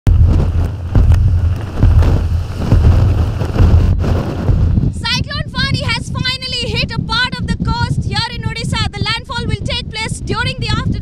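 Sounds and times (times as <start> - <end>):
strong wind buffeting microphone: 0.0 - 11.0.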